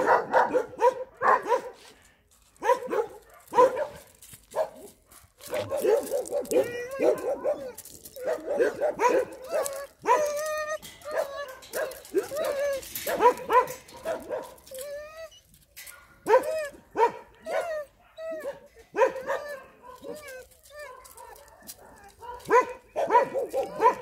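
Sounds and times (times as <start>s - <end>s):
dog barking and yelping: 0.0s - 1.8s, 2.6s - 24.0s.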